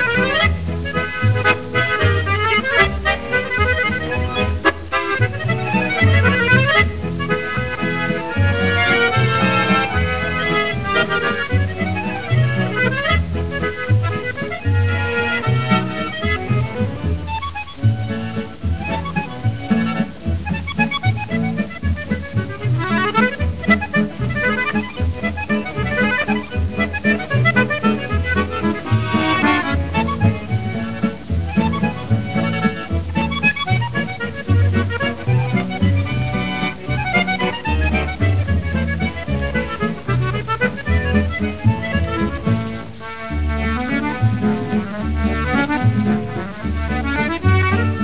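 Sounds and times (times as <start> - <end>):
button accordion runs: 0.0 - 48.0
double bass line: 0.0 - 48.0
guitar accompaniment: 0.0 - 48.0.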